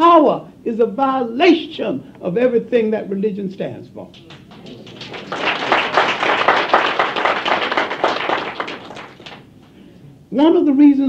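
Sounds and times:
audience applause: 4.2 - 9.6.

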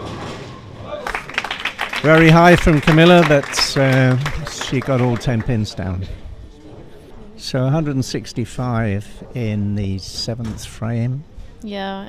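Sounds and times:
scattered clapping: 1.0 - 6.0.

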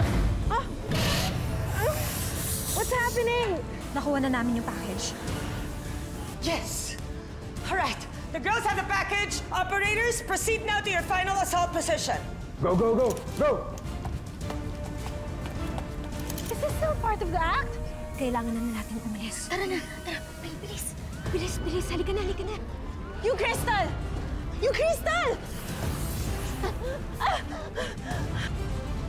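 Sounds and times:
low background music: 0.0 - 29.0
running boots on tiled floor: 13.9 - 16.2
woman crying out and gasping: 26.6 - 28.7.

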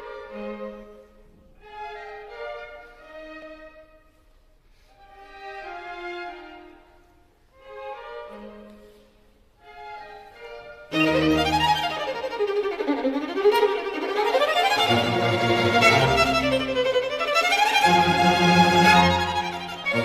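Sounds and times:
bowed strings music: 0.0 - 20.0.

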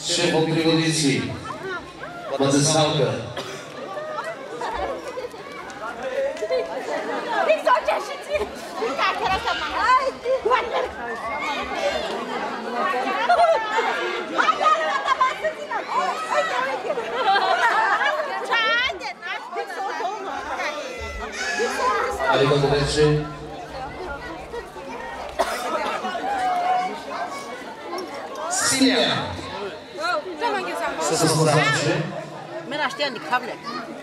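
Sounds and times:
crowd chatter: 0.0 - 34.0.

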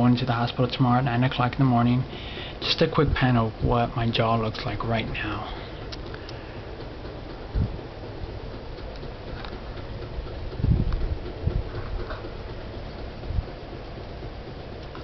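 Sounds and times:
low handling thumps: 0.0 - 15.0
steady hiss: 0.0 - 15.0.

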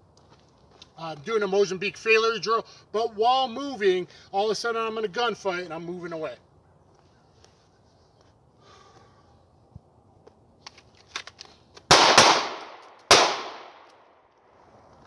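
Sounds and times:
pistol shots with echo: 11.9 - 13.9.

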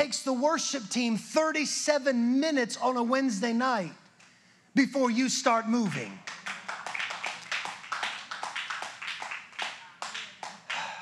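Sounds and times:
congregation clapping: 5.8 - 11.0.

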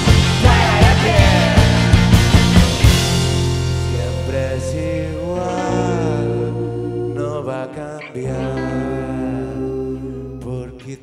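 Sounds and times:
electric guitar: 0.0 - 10.8
bass guitar: 0.0 - 10.9
keyboard: 0.0 - 11.0
voices singing long notes: 0.1 - 2.2, 3.8 - 11.0.

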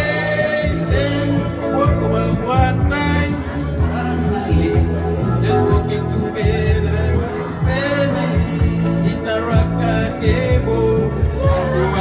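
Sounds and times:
amplified backing music: 0.0 - 12.0
group of singers: 0.0 - 12.0.

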